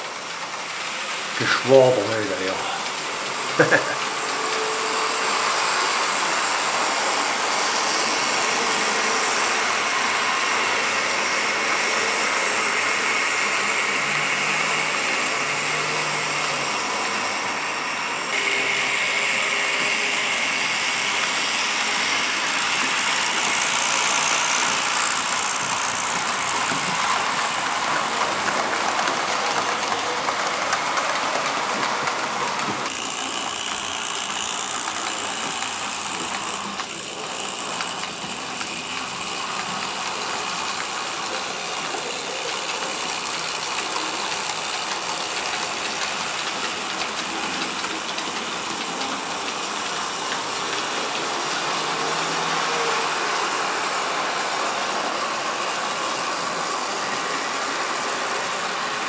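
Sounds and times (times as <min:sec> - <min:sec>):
model trains whirring on track: 0:00.0 - 0:59.0.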